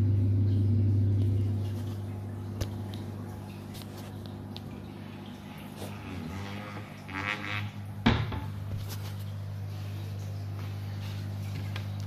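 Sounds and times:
aquarium pump humming: 0.0 - 12.0.

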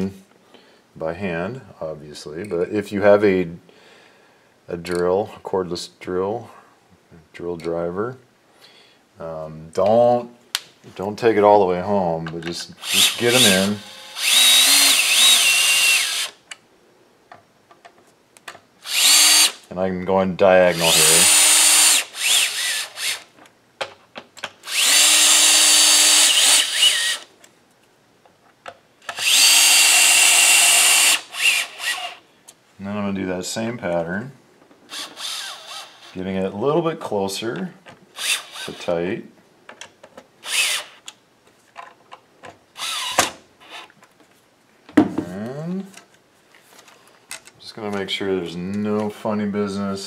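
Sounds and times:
cordless drill driving screws: 12.8 - 16.4, 18.8 - 19.6, 20.7 - 23.3, 24.6 - 27.3, 29.1 - 32.2, 34.9 - 36.2, 38.2 - 38.9, 40.4 - 41.0, 42.8 - 43.9.

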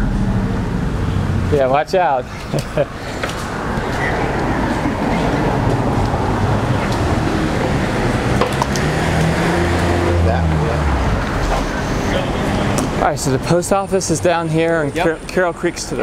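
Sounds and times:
road traffic noise: 0.0 - 16.0
vehicle engine running: 2.8 - 13.0.

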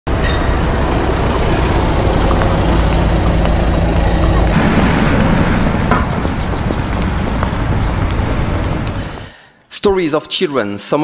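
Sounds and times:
road traffic rumble: 0.1 - 9.4.

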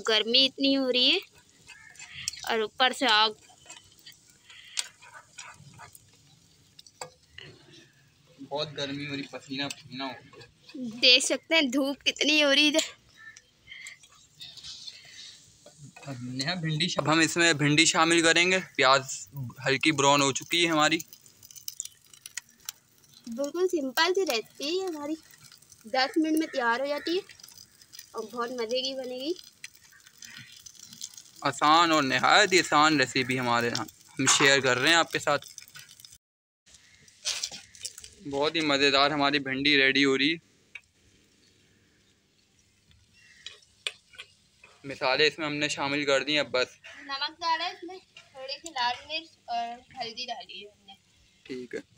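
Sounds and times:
frying oil crackling pops: 0.0 - 8.0, 8.6 - 39.8, 40.6 - 47.0, 47.7 - 49.1.

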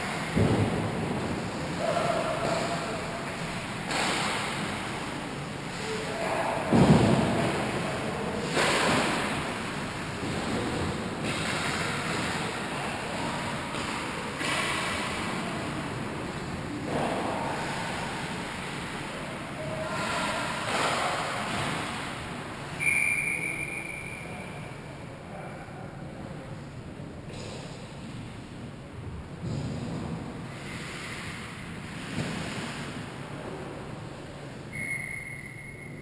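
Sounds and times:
thump: 0.3 - 1.2, 6.7 - 7.4
referee whistle blast: 22.8 - 24.5, 34.7 - 36.0.

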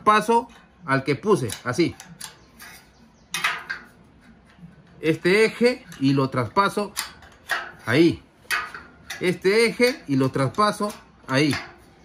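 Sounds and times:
steel scriber scratching metal: 1.4 - 4.4.

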